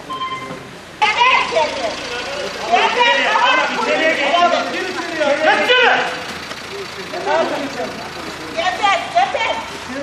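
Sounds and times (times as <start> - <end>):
people talking indistinctly: 0.0 - 10.0
car engine idling: 0.7 - 10.0.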